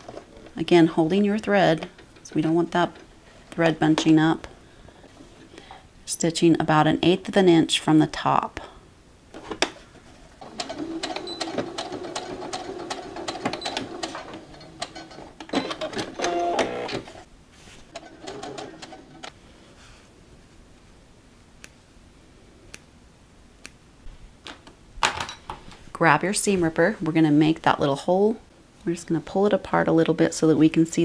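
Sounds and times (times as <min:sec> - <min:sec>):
sewing machine stitching: 0:10.4 - 0:17.2, 0:17.9 - 0:19.3.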